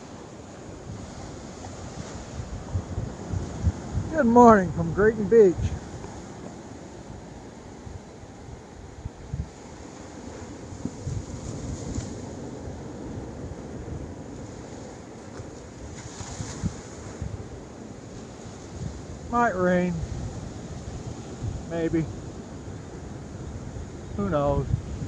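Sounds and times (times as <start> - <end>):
ocean surf washing onto beach: 0.0 - 25.0
wind gusting on microphone: 0.0 - 25.0.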